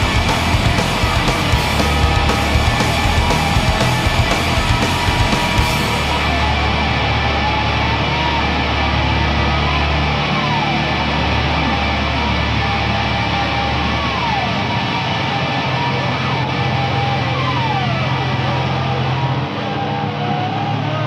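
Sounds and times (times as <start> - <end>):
sustained bass notes: 0.0 - 20.8
distorted electric guitars: 0.0 - 21.0
heavy metal rock instrumental: 0.0 - 21.0.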